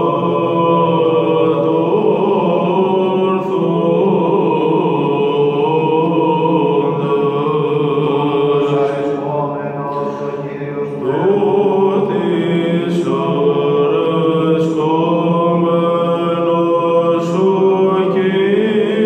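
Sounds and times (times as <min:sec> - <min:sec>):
man chanting in long notes: 0:06.2 - 0:19.0.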